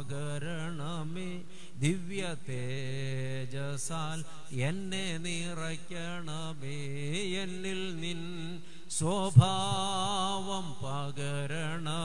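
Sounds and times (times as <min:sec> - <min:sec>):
man singing devotional chant: 0:00.0 - 0:12.0.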